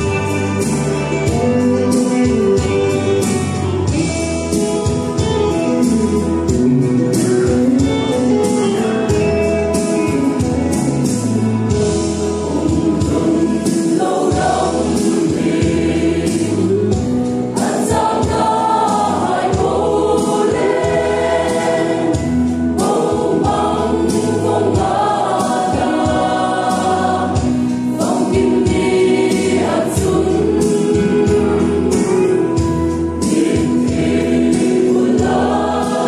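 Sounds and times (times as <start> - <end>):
mixed choir singing gospel: 0.0 - 6.6, 11.0 - 36.0
bass line: 0.0 - 36.0
percussion beat: 0.0 - 36.0.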